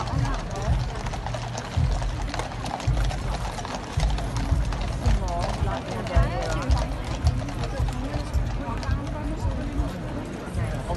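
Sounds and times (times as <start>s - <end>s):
crowd chatter: 0.0s - 10.9s
horse hooves clip-clopping on road: 0.0s - 10.9s.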